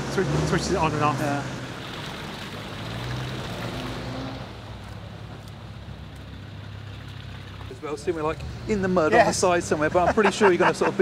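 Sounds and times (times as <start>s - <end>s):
vehicle engine driving through mud: 0.0s - 11.0s.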